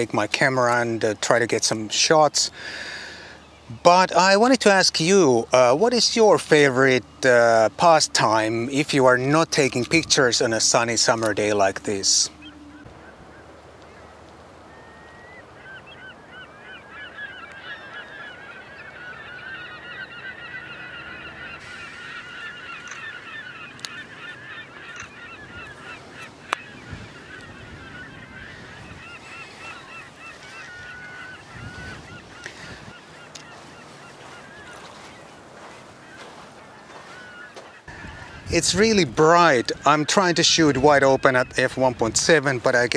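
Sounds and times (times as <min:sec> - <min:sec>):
flock of birds calling: 0:00.0 - 0:42.9.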